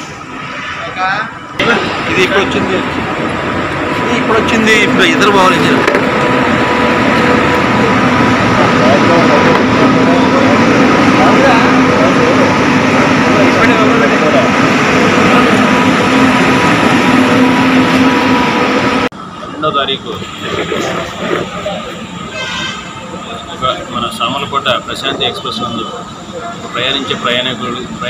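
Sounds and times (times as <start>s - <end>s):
indistinct voices: 0.0s - 28.0s.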